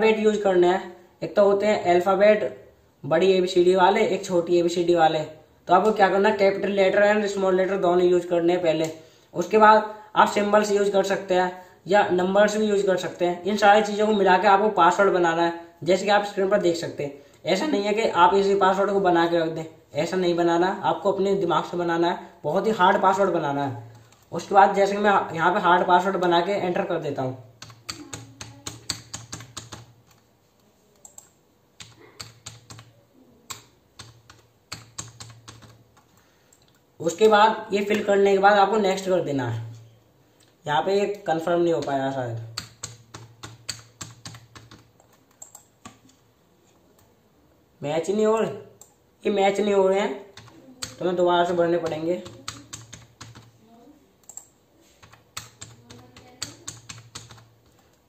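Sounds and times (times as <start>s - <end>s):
typing on computer keyboard: 27.6s - 30.3s, 31.0s - 37.3s, 41.8s - 46.2s, 50.3s - 53.6s, 54.2s - 58.0s.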